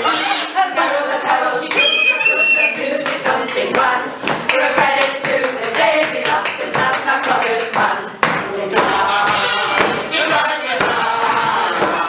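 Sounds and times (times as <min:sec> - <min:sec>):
voices singing: 0:00.0 - 0:12.0
high whistle note: 0:01.7 - 0:02.8.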